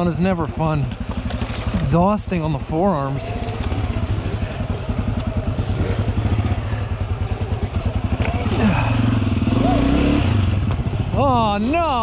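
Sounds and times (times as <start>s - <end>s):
dirt bike engine chugging: 0.0s - 12.0s.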